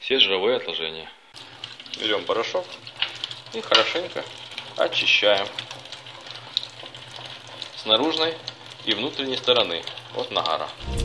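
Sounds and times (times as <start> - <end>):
tap water running into sink: 1.4 - 10.9.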